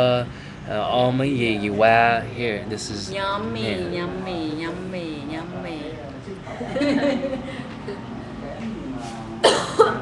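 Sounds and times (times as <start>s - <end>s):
person coughing: 9.4s - 10.0s.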